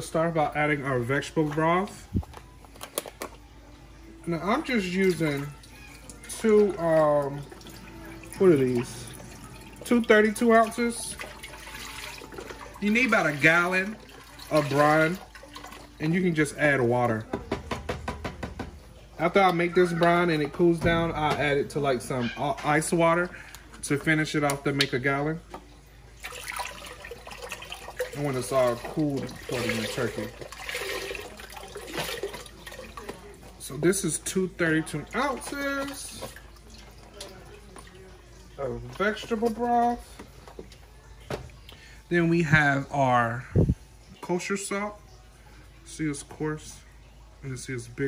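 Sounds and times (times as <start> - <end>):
broth pouring into a pot: 26.2 - 33.6.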